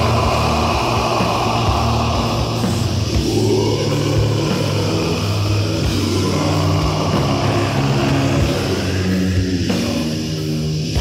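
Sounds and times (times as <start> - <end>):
distorted metal guitars: 0.0 - 11.0
drums: 0.0 - 11.0.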